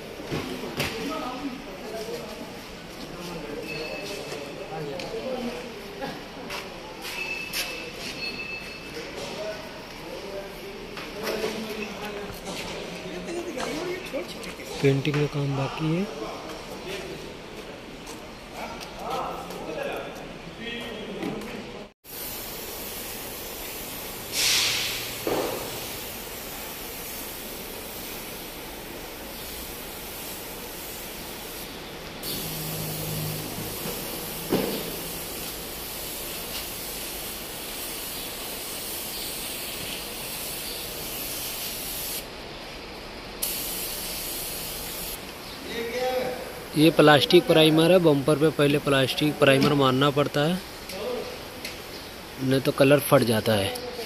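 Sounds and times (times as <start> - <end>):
spray gun hissing: 22.0 - 42.3, 43.4 - 45.2
sharp bursts of air: 22.0 - 42.4, 43.4 - 45.2.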